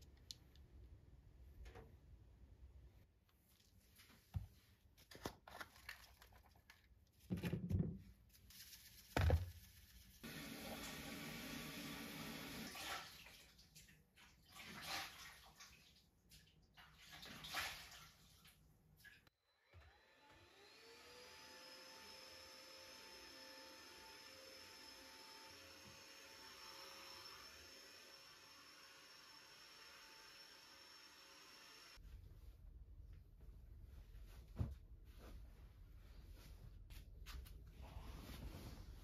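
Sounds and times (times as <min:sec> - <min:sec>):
vacuum cleaner motor whine: 0:10.3 - 0:12.6, 0:19.4 - 0:32.0
water splashing in a washbasin: 0:12.3 - 0:19.3.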